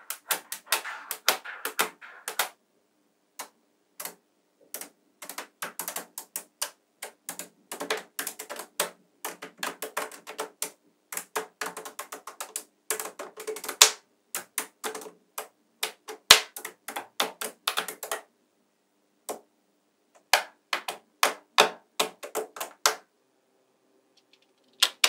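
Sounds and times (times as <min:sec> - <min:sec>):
magnetic metal balls clicking: 0:24.2 - 0:25.0.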